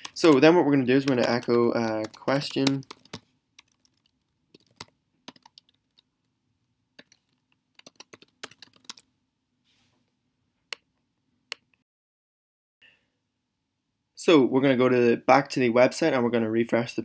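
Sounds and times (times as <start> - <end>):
computer keyboard typing: 0.0 - 6.1, 7.0 - 9.0.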